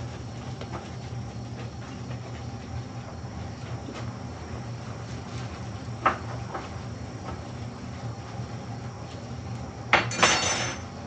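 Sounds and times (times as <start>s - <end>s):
dishes clinking: 10.0s - 10.9s.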